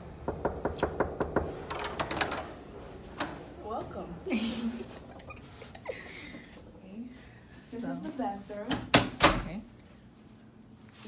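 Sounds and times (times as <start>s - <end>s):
knocking on a door: 0.2s - 1.6s.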